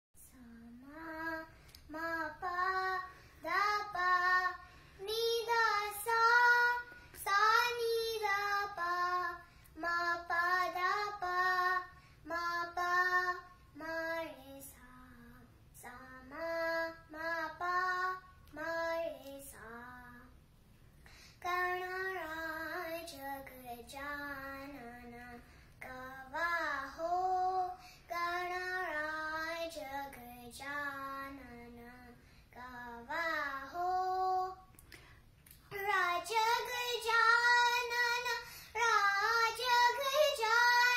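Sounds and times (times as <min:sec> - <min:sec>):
girl singing: 0:00.2 - 0:40.9.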